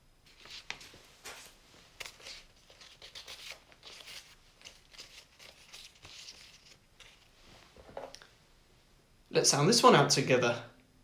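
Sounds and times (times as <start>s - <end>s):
paper cards rustling and scraping: 0.3s - 8.1s.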